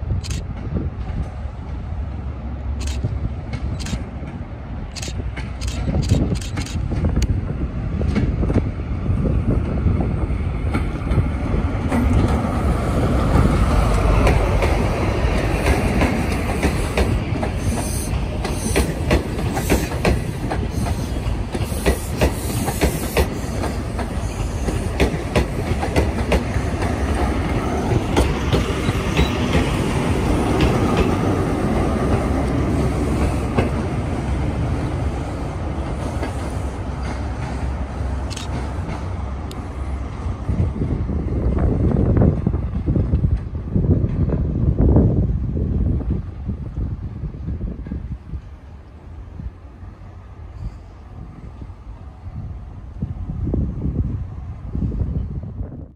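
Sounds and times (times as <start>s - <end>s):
diesel train passing: 0.0s - 55.9s.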